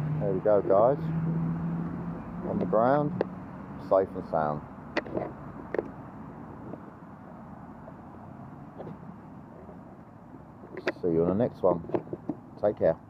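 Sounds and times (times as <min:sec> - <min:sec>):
distant road traffic hum: 0:00.0 - 0:13.0.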